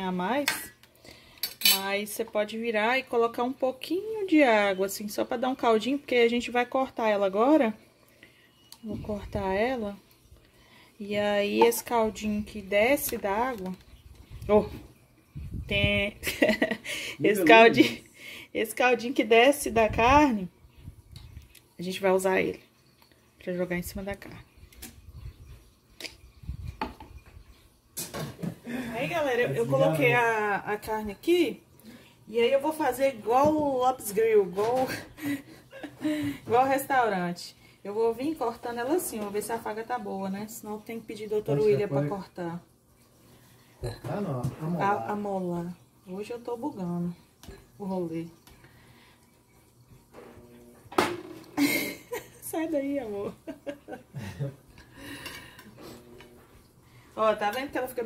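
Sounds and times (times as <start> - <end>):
cutlery scraping on ceramic plate: 1.4 - 1.8
kitchenware clinking on metal pan: 1.4 - 1.9.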